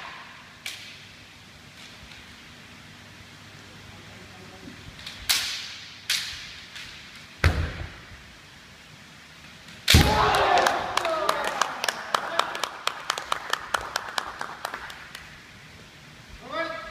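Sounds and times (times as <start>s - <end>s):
bamboo sword strike: 9.9s - 10.3s
people shouting: 10.0s - 11.6s.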